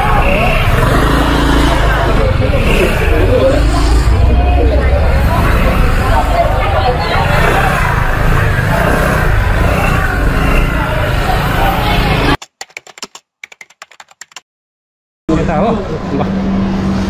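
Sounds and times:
crowd chatter: 0.0 - 12.4
low street rumble: 0.0 - 12.4
keyboard typing clicks: 12.4 - 14.4.

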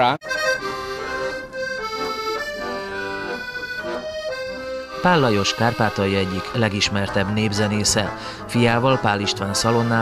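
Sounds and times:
accordion melody: 0.0 - 10.0.

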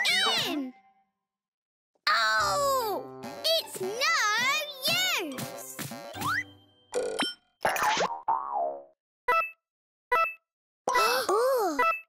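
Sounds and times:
cartoon springy boings: 6.2 - 11.1.

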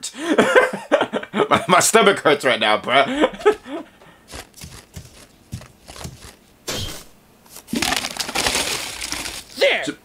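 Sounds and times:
chips poured into a bin: 7.7 - 9.6.

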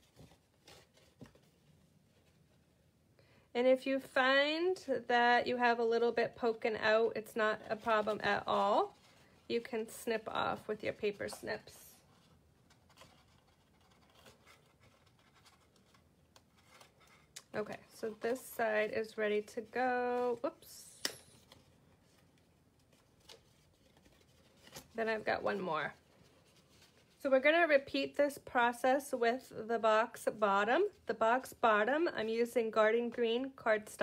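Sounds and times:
card stock being folded: 7.6 - 20.7, 21.3 - 27.2.

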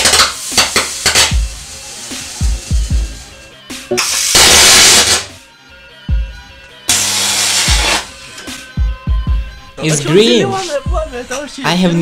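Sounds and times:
electric arc hissing: 0.0 - 5.4, 6.9 - 8.2.

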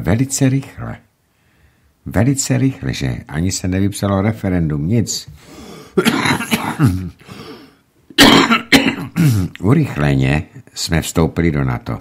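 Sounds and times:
man clearing his throat: 6.0 - 7.3, 8.2 - 9.6.

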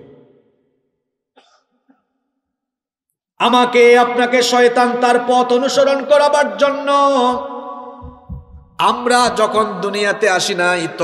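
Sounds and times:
amplified voice echo: 0.0 - 0.7, 3.4 - 11.0
faint cough: 1.4 - 2.1.

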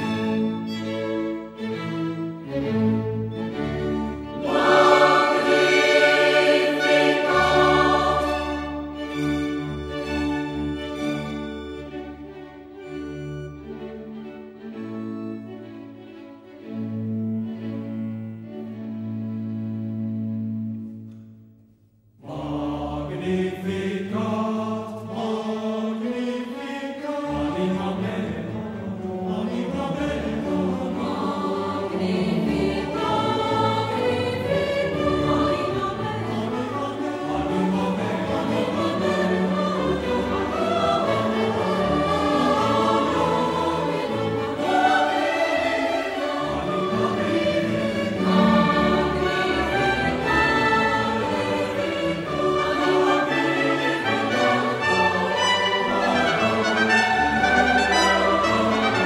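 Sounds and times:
choir singing with instruments: 0.0 - 15.5, 22.2 - 59.0.

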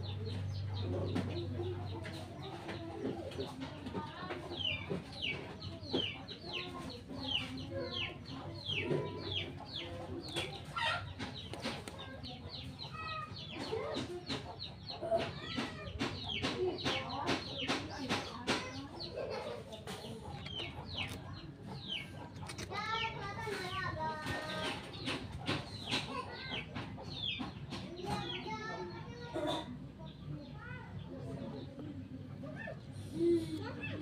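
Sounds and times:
birds chirping: 0.0 - 34.0.

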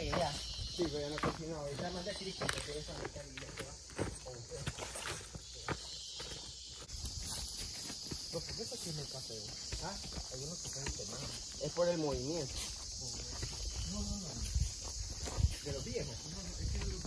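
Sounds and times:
footsteps crunching through leaves: 0.0 - 17.0
insects chirring: 0.0 - 17.0.

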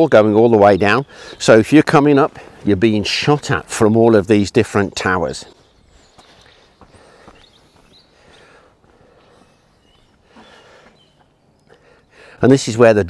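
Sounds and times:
soft footsteps: 5.5 - 11.4.

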